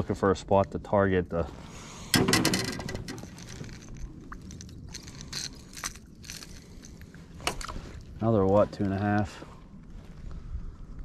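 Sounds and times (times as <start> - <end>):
handling noise crackling: 2.2 - 8.6.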